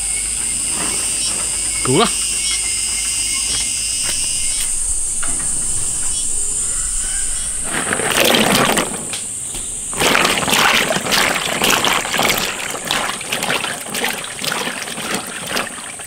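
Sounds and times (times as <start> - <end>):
high insect drone: 0.0 - 16.0
water splashing and sloshing in bowl: 4.0 - 16.0.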